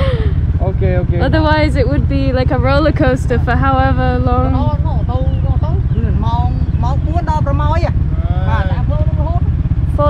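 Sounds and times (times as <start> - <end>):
steady low rumble: 0.0 - 10.0
man speaking: 0.6 - 1.3, 5.0 - 9.2.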